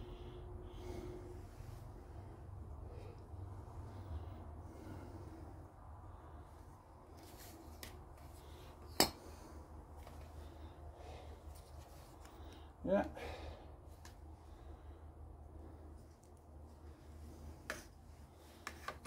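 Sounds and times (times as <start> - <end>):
steady low hum: 0.0 - 19.0
man saying yeah: 12.8 - 13.2.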